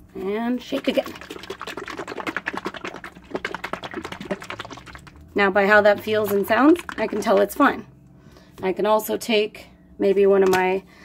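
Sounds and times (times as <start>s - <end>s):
paint sloshing in shaken bottle: 0.6s - 7.6s.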